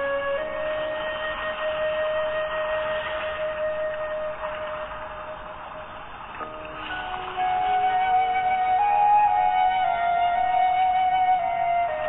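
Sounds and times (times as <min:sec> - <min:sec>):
slow meditation music: 0:00.0 - 0:12.0.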